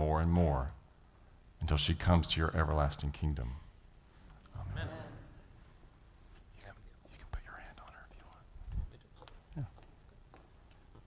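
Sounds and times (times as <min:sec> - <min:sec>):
person whispering: 0:06.5 - 0:09.7.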